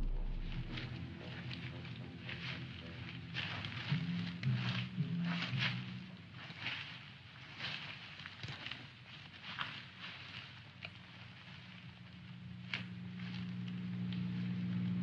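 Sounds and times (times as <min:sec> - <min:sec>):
intro music: 0:00.0 - 0:04.8
faint low hum: 0:00.0 - 0:08.2, 0:09.8 - 0:15.0
brush crackling underfoot: 0:00.0 - 0:15.0.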